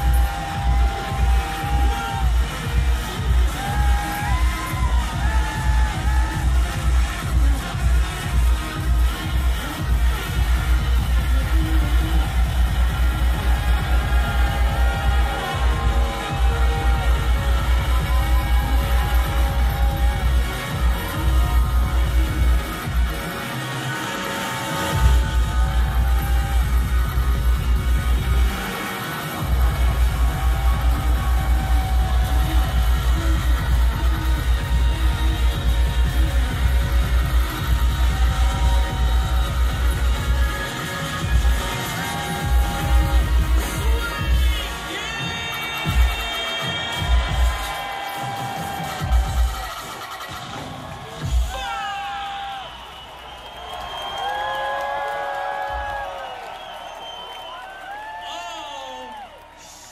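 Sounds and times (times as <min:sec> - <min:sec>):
heavy pulsing bass beat: 0:00.0 - 0:52.0
live grime music over pa: 0:00.0 - 0:52.0.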